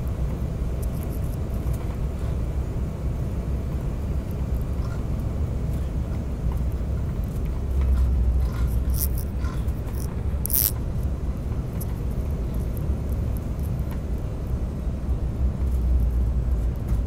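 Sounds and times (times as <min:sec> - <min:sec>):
airliner cabin rumble: 0:00.0 - 0:17.0.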